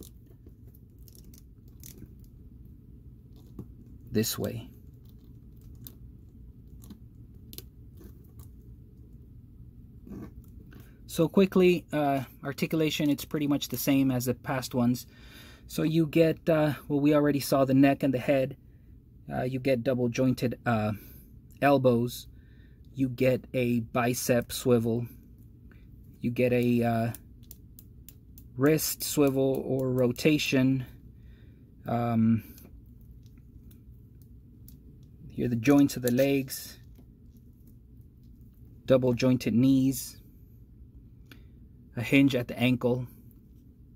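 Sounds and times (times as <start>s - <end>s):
low steady background hum: 0.0s - 43.9s.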